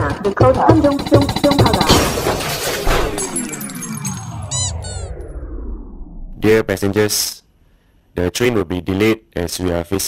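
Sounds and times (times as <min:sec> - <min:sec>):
music: 0:00.0 - 0:04.2
crash: 0:01.7 - 0:06.4
long falling whine: 0:03.2 - 0:06.7.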